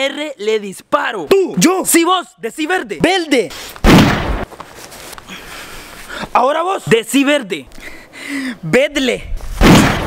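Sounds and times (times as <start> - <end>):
gunshot: 3.8 - 4.5, 9.6 - 10.0.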